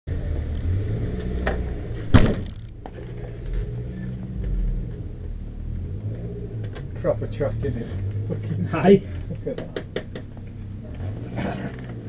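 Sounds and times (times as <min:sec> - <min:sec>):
car engine idling: 0:01.4 - 0:12.0
loud thump: 0:02.0 - 0:02.8.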